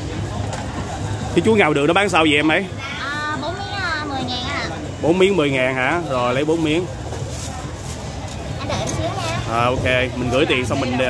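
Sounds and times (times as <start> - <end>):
market low hum: 0.0 - 11.0.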